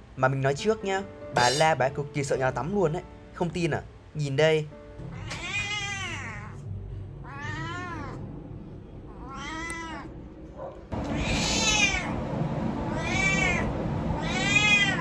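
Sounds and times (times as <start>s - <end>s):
cat yowling: 5.1s - 8.2s, 9.1s - 10.2s, 11.0s - 12.2s, 12.9s - 15.0s.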